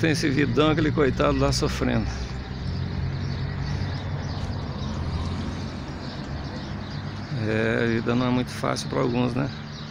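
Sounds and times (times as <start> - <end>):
vehicle engine running: 0.0 - 9.7
road noise: 0.0 - 9.9.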